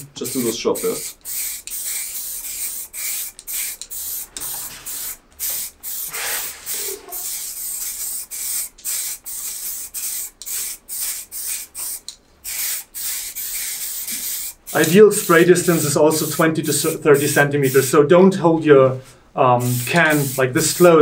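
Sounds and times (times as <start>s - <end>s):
spray cans hissing: 0.0s - 17.9s, 19.6s - 21.0s.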